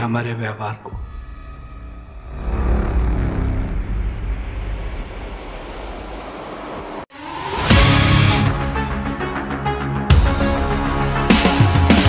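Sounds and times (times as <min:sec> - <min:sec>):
low rumbling: 0:00.9 - 0:07.1.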